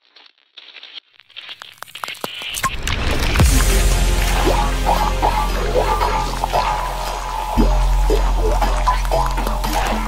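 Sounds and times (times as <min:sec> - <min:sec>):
sharp clicks and crackles: 0:00.0 - 0:03.7
intro music: 0:02.6 - 0:10.0
deep rumble: 0:02.8 - 0:10.0.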